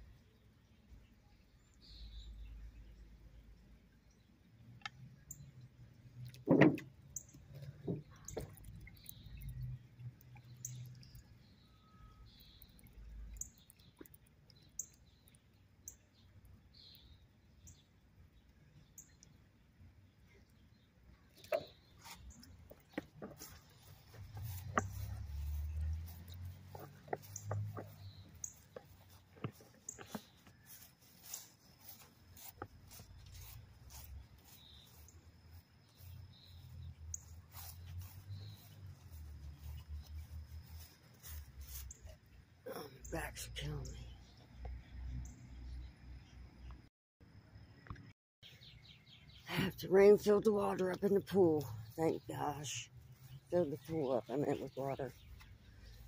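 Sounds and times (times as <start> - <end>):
small bird chirping: 0.7 - 5.7, 7.1 - 19.4, 20.2 - 46.9, 47.8 - 56.0
handling and footstep rumble: 21.4 - 35.6.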